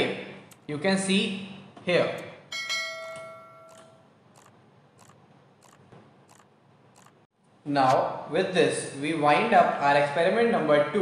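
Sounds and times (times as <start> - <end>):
bell-like ringing tone: 2.5 - 4.0.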